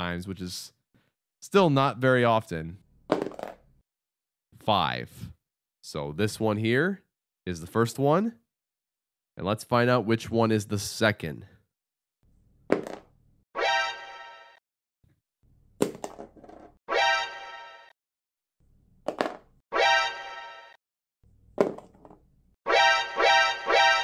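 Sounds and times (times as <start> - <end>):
die landing on cardboard box: 21.6 - 22.2.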